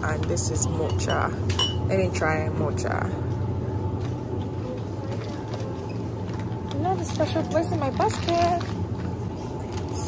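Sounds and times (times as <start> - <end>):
supermarket background hum: 0.0 - 10.0.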